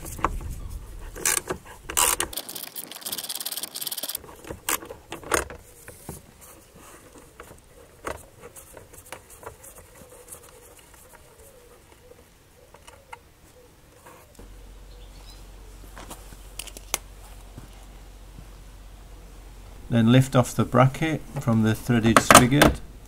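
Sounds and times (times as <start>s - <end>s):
socket wrench ratcheting: 1.2s - 4.8s.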